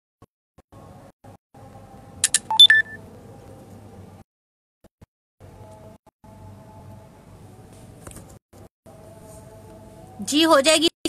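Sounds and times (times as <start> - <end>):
quick clicks: 2.2 - 2.7.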